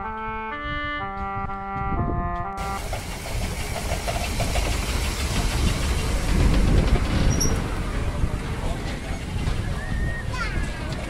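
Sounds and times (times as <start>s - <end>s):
clarinet-like music: 0.0s - 2.8s.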